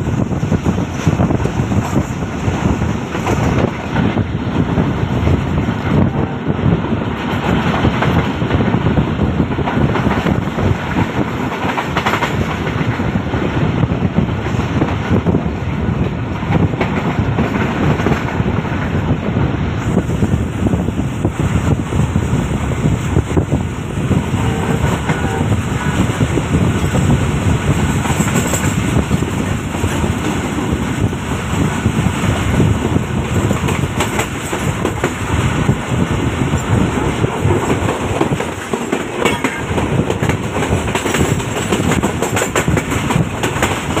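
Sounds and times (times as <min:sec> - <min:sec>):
train wheels rumbling on track: 0:00.0 - 0:44.0.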